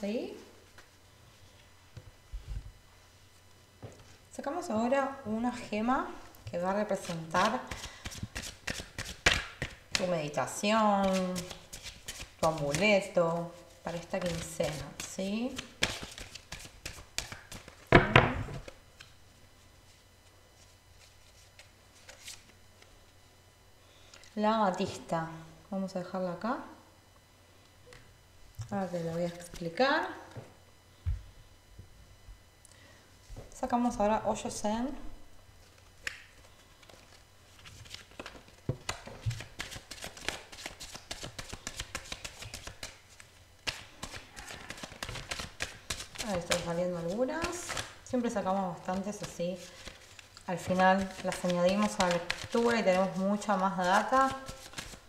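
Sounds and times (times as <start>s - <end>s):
cards being shuffled: 7.0s - 10.1s, 11.0s - 12.8s, 13.6s - 17.8s, 20.6s - 22.6s, 35.6s - 48.0s, 48.9s - 55.0s.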